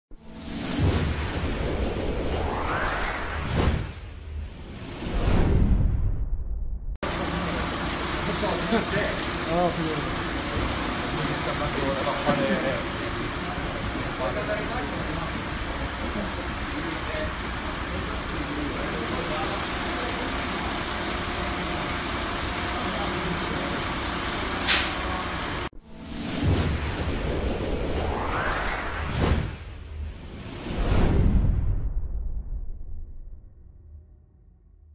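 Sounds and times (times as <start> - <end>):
tone sweeping upward: 0.1 - 5.5, 25.8 - 30.1
whooshing sound effects: 0.1 - 7.0, 25.8 - 33.4
brief sharp noise: 24.6 - 25.1.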